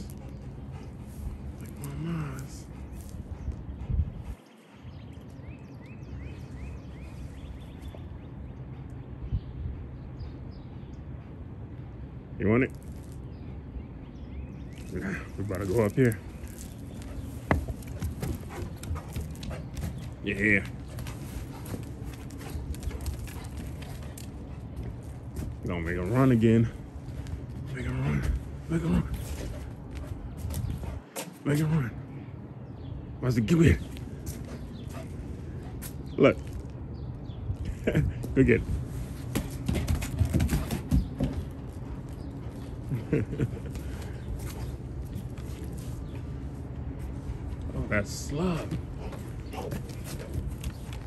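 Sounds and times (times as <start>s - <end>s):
dog panting: 0.0s - 9.2s, 14.9s - 25.6s, 26.7s - 31.4s, 34.2s - 36.1s
bird chirping: 0.0s - 11.2s
steady low rumble: 0.0s - 51.0s
wind rumble on microphone: 2.6s - 5.1s, 9.1s - 10.6s, 26.8s - 31.0s, 36.7s - 39.2s.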